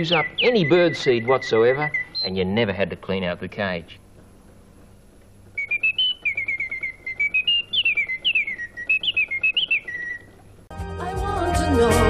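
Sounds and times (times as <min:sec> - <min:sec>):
mechanical bird whistling: 0:00.0 - 0:02.4, 0:05.5 - 0:10.4.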